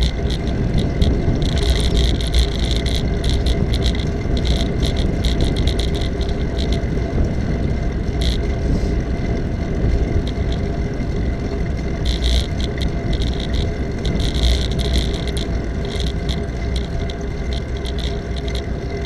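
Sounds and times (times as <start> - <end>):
small rattling clicks: 0.0 - 8.6, 9.2 - 19.0
road rumble: 0.0 - 19.0
wind on microphone: 0.0 - 19.0.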